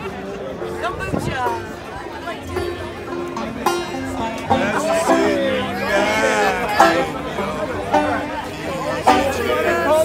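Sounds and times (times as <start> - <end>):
banjo picking single notes: 0.0 - 10.0
people talking: 0.0 - 10.0.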